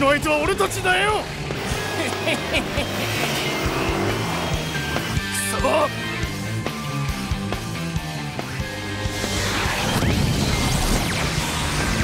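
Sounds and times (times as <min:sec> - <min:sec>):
racing machines engine whine: 0:00.0 - 0:12.0
rock music with steady beat: 0:00.3 - 0:12.0.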